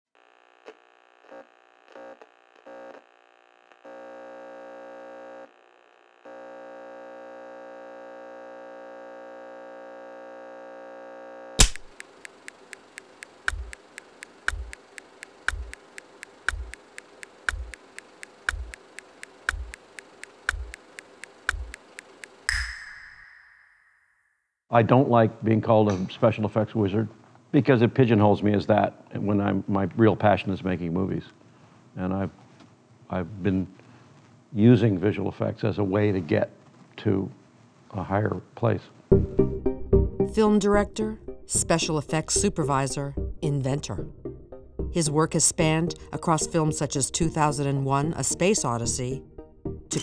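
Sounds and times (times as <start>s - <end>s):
buzzy electronic test tone: 0.2s - 24.2s
loud sharp click: 11.6s - 15.8s, 21.4s - 23.8s
light ticks: 11.9s - 22.4s
sharp hit with ringing ping: 22.5s - 24.2s.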